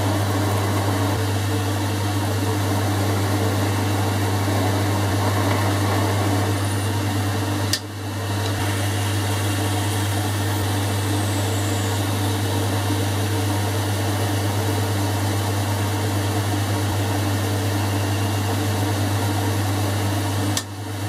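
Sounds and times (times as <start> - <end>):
lathe motor hum: 0.0 - 21.0.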